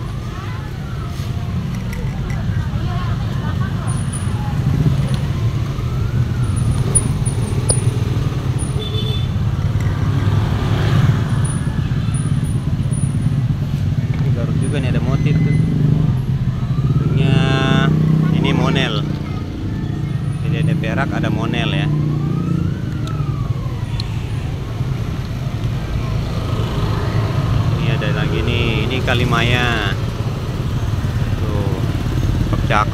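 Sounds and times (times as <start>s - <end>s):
traffic engine rumble: 0.0s - 32.9s.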